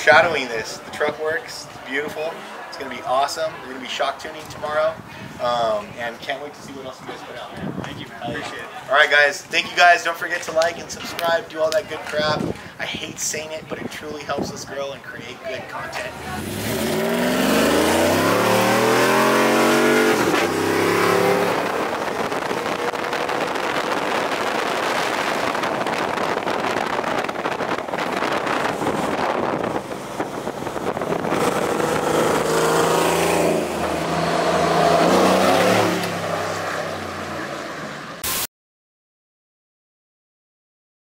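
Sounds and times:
pickup truck engine accelerating: 16.0s - 38.2s
tyre and wind hiss: 17.0s - 33.5s.

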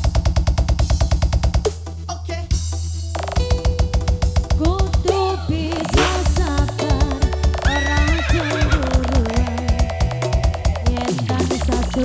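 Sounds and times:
live band music: 3.4s - 10.3s.

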